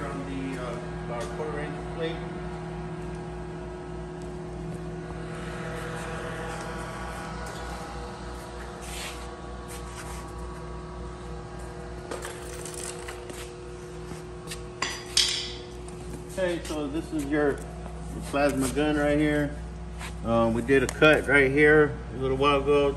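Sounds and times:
plasma cutter electrical hum: 0.0s - 22.9s.

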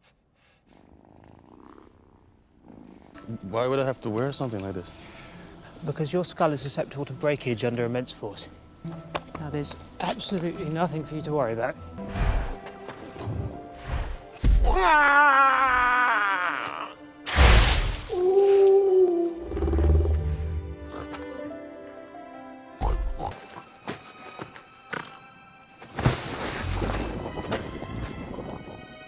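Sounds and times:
creature purring rattle: 0.7s - 3.5s, 19.4s - 20.3s
man imitating animal mating call: 18.1s - 21.2s.

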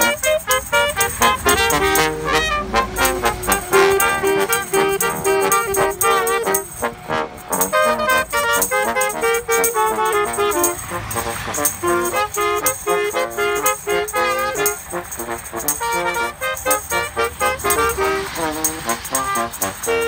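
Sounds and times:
brass band playing lively tune: 0.0s - 20.0s
tambourine shaken: 0.0s - 20.0s.

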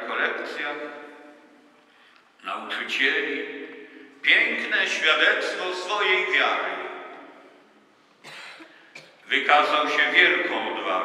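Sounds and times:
echoing speech: 0.0s - 1.8s, 2.4s - 11.0s
person coughing: 8.2s - 9.2s.

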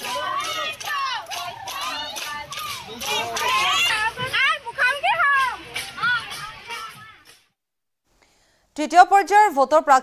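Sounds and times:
women singing and calling out: 0.0s - 7.3s.

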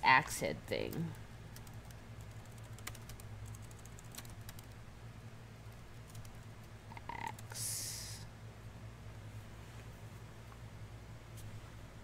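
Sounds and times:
faint low hum: 0.0s - 12.0s
computer keyboard typing: 0.8s - 4.8s, 6.0s - 7.5s.

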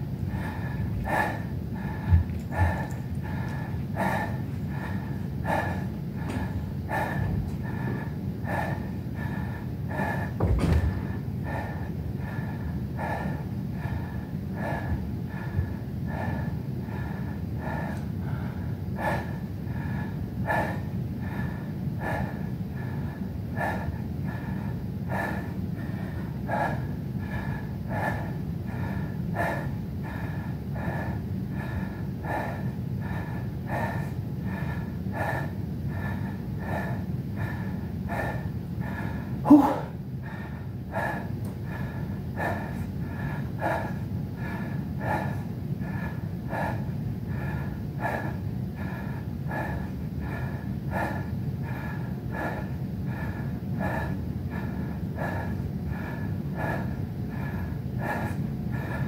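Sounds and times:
low hum: 0.0s - 59.0s
man breathing hard through nose: 0.0s - 59.0s
low thump: 10.4s - 11.2s.

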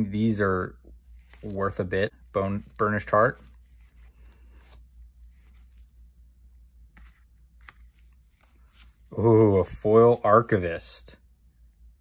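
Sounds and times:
low steady hum: 0.0s - 12.0s
cards being flipped through: 1.1s - 1.9s, 2.5s - 6.1s, 6.7s - 10.6s.

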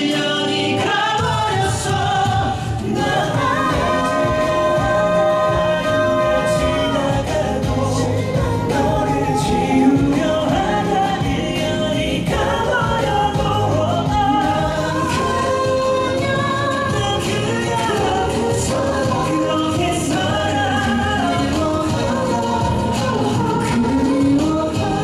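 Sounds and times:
backing track: 0.0s - 25.0s
male vocal group singing: 0.0s - 25.0s.

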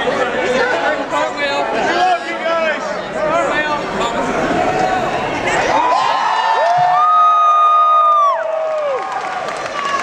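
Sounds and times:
audience cheering: 5.6s - 10.0s.

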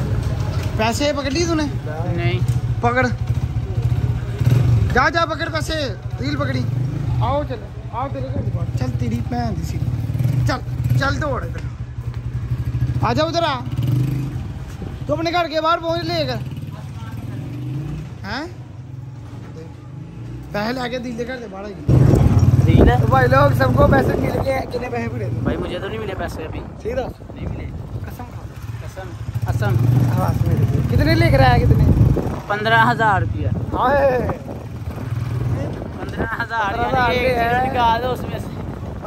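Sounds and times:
motorcycle engine pulling away: 0.0s - 15.1s, 21.8s - 25.8s, 28.3s - 39.0s.

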